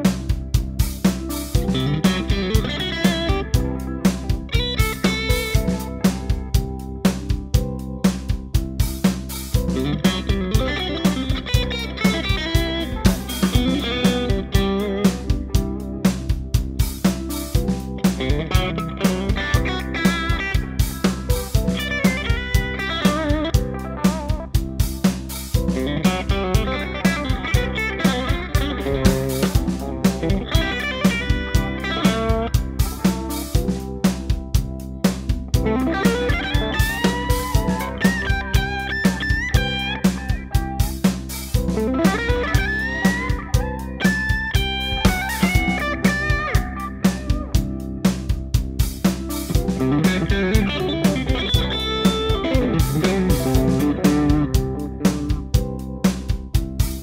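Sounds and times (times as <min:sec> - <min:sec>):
electric guitar lead lines: 0:00.0 - 0:08.0, 0:08.6 - 0:16.5, 0:17.2 - 0:48.5, 0:49.2 - 0:56.0.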